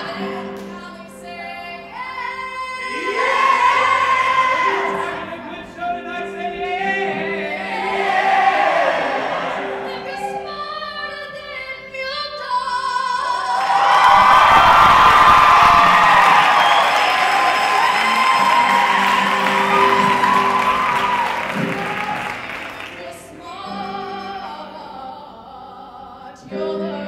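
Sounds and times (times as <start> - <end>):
person singing: 0.0 - 8.7, 15.6 - 27.0.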